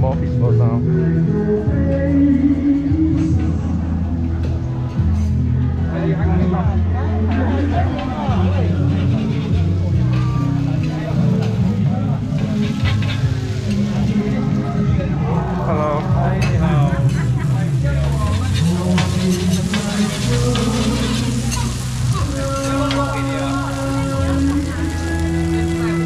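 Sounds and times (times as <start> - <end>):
background music: 0.0 - 26.0
food sizzling on griddle: 7.6 - 15.5, 16.4 - 26.0
metal spatulas scraping griddle: 12.3 - 13.4, 18.2 - 23.9.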